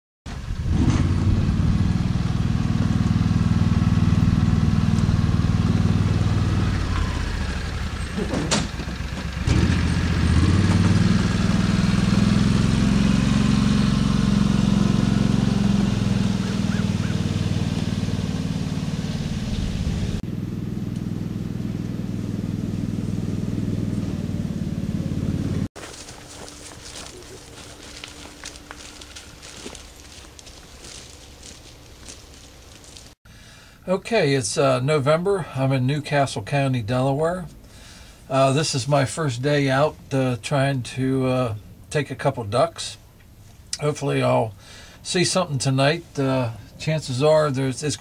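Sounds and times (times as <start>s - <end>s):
utility vehicle engine running: 0.3s - 33.2s.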